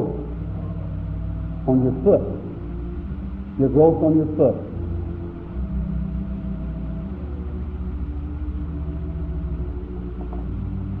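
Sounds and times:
low background hum: 0:00.0 - 0:11.0
soft sustained organ chords: 0:00.0 - 0:11.0.

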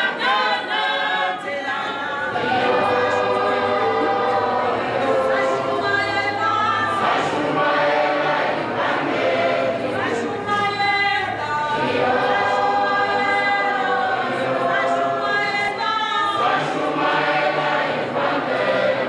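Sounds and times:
choir singing a cappella: 0:00.0 - 0:19.0.

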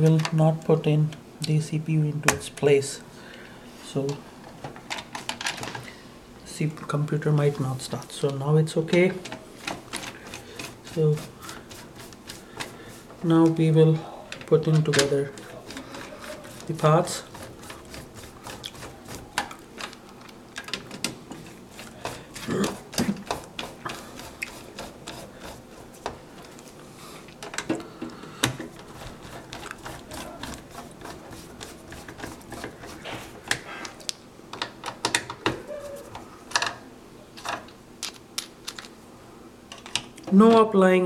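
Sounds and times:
person coughing: 0:22.4 - 0:22.9.

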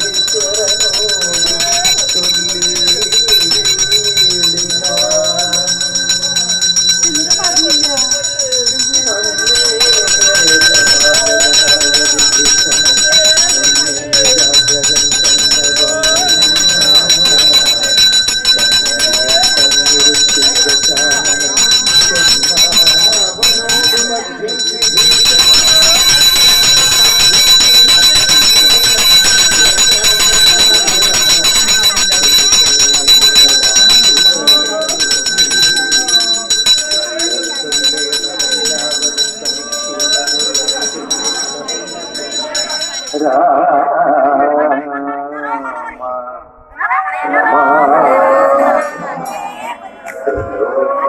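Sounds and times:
temple bell ringing rapidly: 0:00.0 - 0:44.7
voices: 0:00.0 - 0:51.0.

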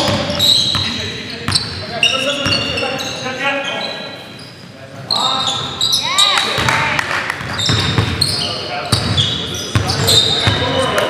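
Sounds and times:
basketball bouncing: 0:00.0 - 0:00.9, 0:06.4 - 0:08.2
players' voices echoing: 0:00.0 - 0:11.0
sneakers squeaking on hardwood: 0:00.0 - 0:11.0.

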